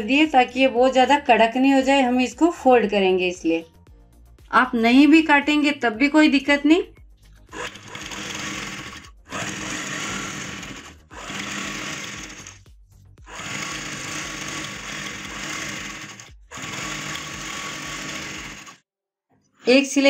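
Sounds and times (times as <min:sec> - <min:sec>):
sewing machine stitching: 0:07.5 - 0:12.6, 0:13.3 - 0:18.8.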